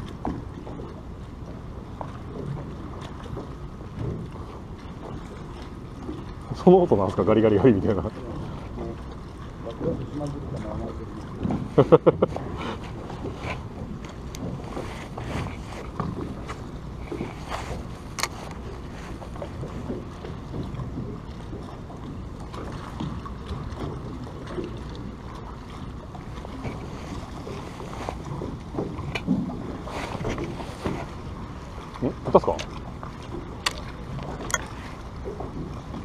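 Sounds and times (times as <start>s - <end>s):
water lapping against boat hull: 0.0s - 36.0s.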